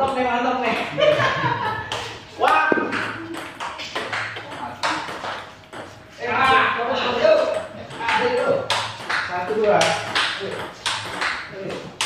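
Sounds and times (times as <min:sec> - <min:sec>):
table tennis ball bouncing: 0:00.0 - 0:01.3, 0:01.9 - 0:12.0.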